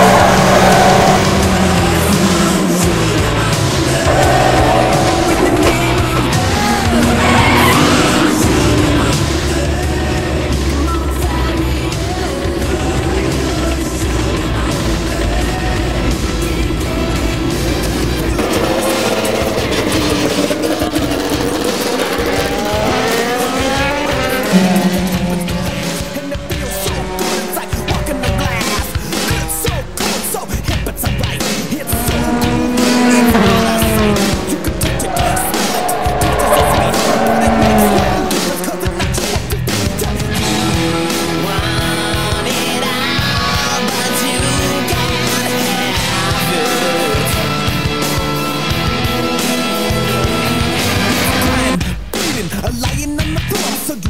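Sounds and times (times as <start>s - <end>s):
soundtrack music: 0.0s - 11.8s, 14.5s - 29.2s, 31.1s - 51.7s
racing car engines: 0.0s - 54.0s.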